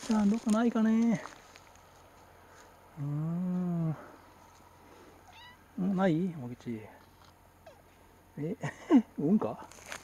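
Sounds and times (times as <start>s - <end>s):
cat meowing: 5.2s - 5.6s.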